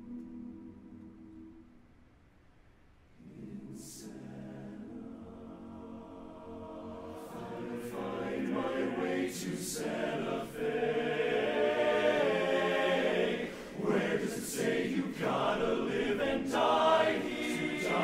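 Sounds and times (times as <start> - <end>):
men's chorus singing a cappella: 3.2 - 18.0
singers breathing: 13.4 - 13.9.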